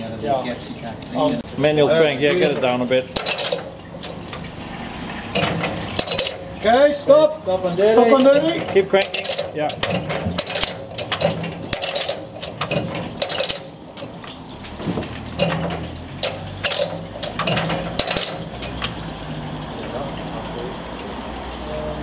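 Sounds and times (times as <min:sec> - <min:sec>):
metallic clicks and clinks: 0:08.3 - 0:14.1, 0:15.4 - 0:19.0.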